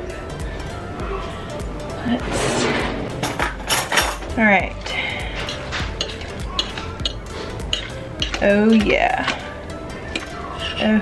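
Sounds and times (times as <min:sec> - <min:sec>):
background music: 0:00.0 - 0:11.0
fork clinking on ceramic crock: 0:05.4 - 0:09.4.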